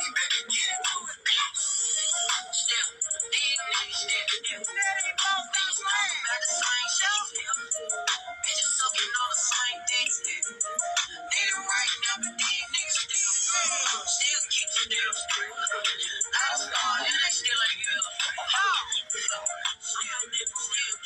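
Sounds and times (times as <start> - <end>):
pitch-corrected vocals over beat: 0.0 - 21.0.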